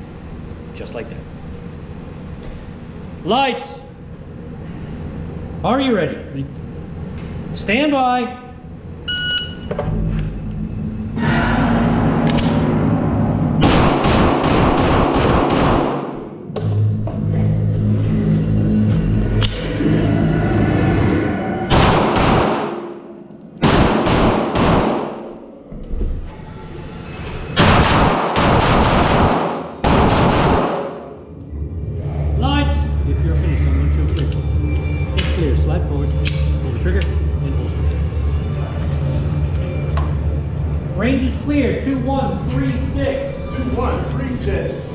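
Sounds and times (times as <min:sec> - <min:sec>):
pistol shots in indoor range: 0:13.6 - 0:16.4, 0:21.7 - 0:25.5, 0:27.6 - 0:31.2.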